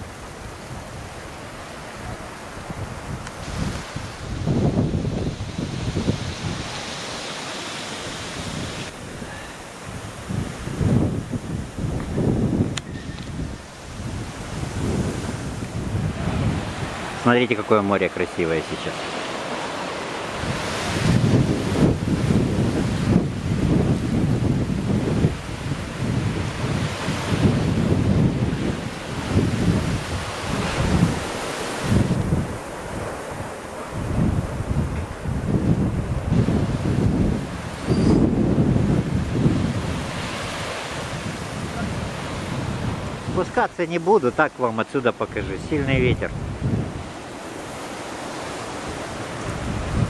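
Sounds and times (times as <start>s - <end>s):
surf from stormy sea: 0.0s - 50.0s
wind gusting across microphone: 0.0s - 50.0s.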